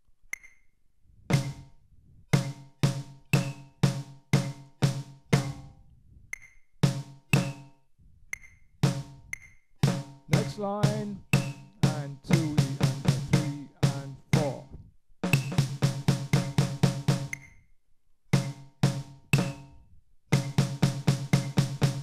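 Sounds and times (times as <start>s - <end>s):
drum struck with sticks: 1.3s - 1.7s, 2.4s - 5.8s, 6.8s - 7.7s, 8.8s - 17.4s, 18.4s - 22.0s.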